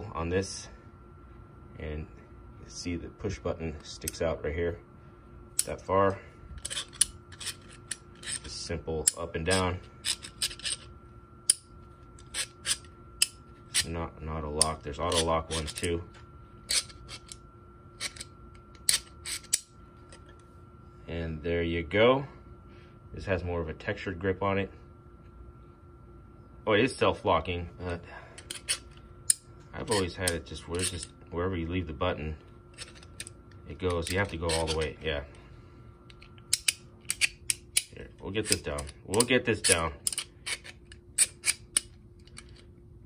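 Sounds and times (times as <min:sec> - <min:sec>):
quiet tool handling: 0:05.6 - 0:17.4, 0:32.4 - 0:35.4
pliers clicking: 0:36.1 - 0:42.6.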